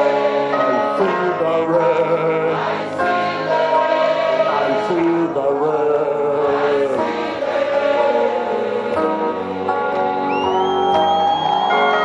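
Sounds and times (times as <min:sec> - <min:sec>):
choir singing held notes: 0:00.0 - 0:12.0
music: 0:00.0 - 0:12.0.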